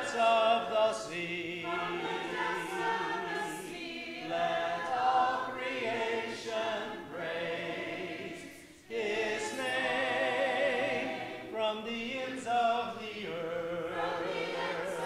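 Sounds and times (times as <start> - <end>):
congregation singing a hymn: 0.0 - 15.0.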